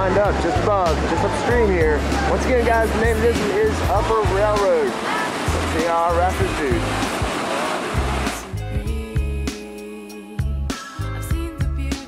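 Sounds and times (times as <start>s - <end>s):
rushing whitewater: 0.0s - 8.7s
music with bass beat: 0.1s - 4.7s, 8.0s - 9.5s, 10.4s - 12.0s.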